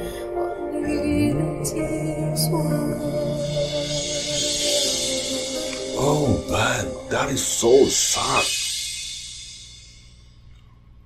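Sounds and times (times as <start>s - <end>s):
song ending ringing out: 0.8s - 10.1s.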